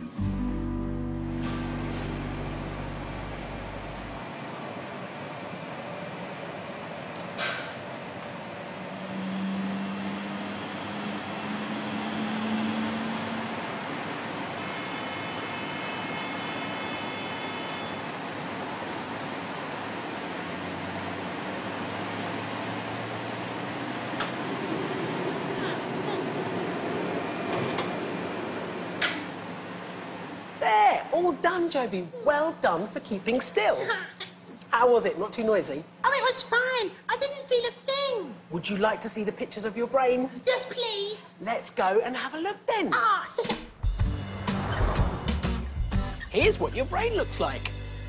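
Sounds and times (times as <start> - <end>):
high whining tones: 8.7 - 18.0.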